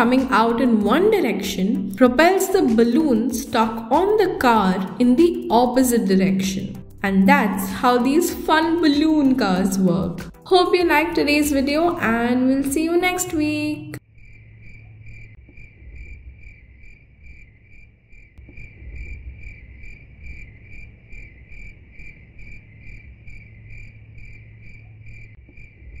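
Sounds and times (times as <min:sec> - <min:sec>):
cricket chirping: 0:14.0 - 0:26.0.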